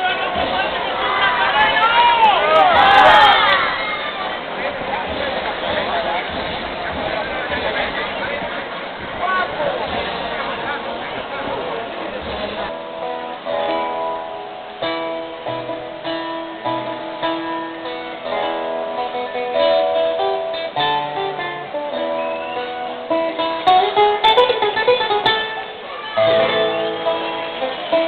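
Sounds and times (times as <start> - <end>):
plucked string instrument melody: 4.1 - 28.0.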